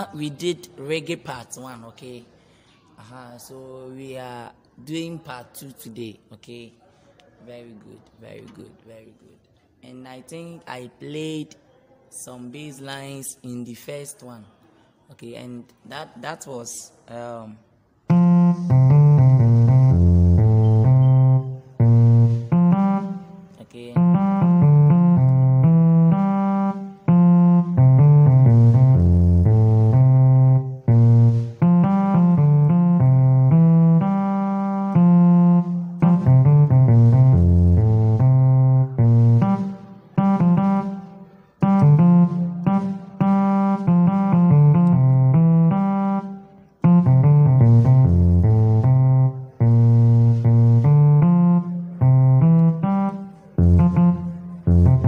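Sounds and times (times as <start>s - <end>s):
electronic keyboard chords: 18.0s - 55.0s.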